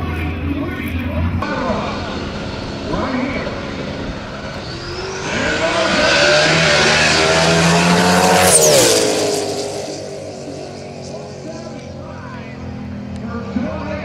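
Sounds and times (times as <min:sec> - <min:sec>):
race car launching at full throttle: 0:01.3 - 0:13.6.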